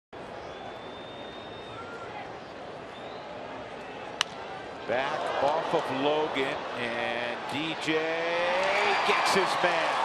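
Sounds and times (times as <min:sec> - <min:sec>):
faint high whistles: 0:00.3 - 0:03.5.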